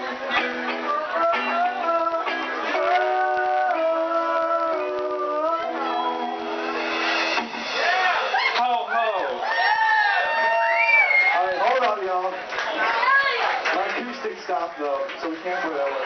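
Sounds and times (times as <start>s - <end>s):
acoustic guitar: 0.0s - 9.0s
acoustic band song: 0.0s - 16.0s
audience whooping and cheering: 5.7s - 11.8s.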